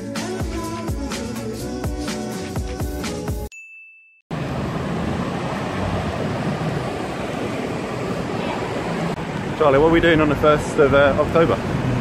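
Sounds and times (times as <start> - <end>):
background music: 0.0 - 3.5
city street traffic rumble: 4.3 - 12.0.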